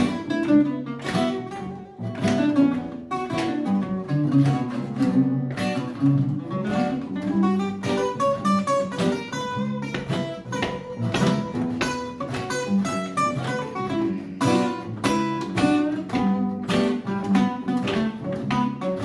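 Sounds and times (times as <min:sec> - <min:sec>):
acoustic guitars playing blues: 0:00.0 - 0:19.0.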